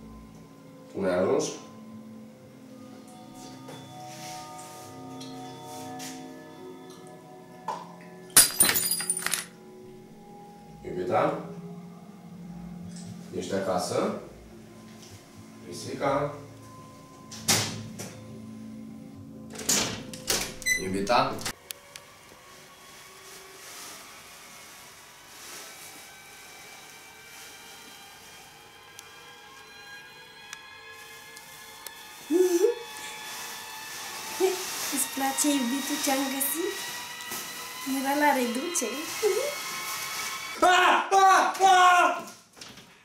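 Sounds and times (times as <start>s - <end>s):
quiet background music: 0.0s - 43.0s
small hard objects clattering: 8.4s - 9.5s.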